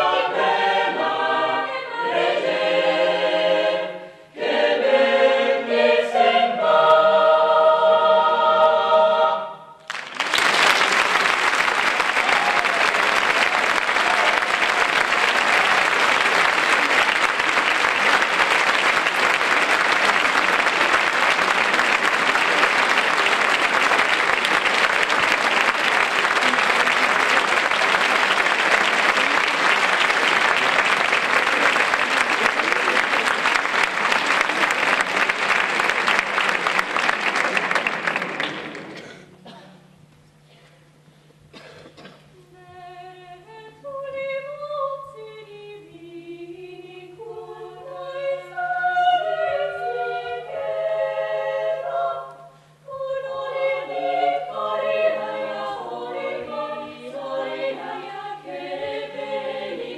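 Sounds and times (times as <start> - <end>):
choir holding a chord: 0.0 - 9.8, 42.7 - 59.9
audience applauding: 9.8 - 39.1.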